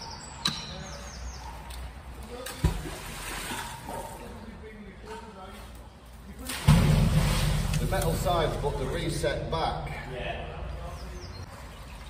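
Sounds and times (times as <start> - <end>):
water lapping and sloshing: 1.2 - 10.1, 10.9 - 12.0
loud low rumble: 6.7 - 10.8.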